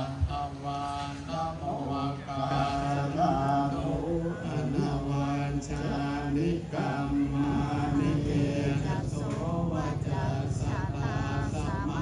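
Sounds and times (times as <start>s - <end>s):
monks chanting: 0.0s - 12.0s.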